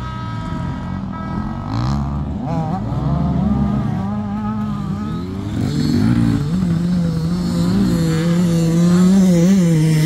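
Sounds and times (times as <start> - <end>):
dirt bike engine passing: 0.0 - 10.0.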